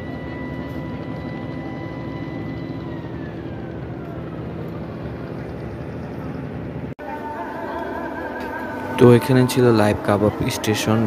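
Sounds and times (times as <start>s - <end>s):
high-pitched whine: 0.0s - 11.0s
mechanical drone with low hum: 0.0s - 11.0s.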